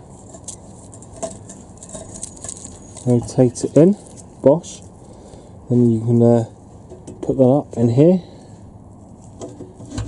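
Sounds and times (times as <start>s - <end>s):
handling rustles and clicks: 0.1s - 4.3s.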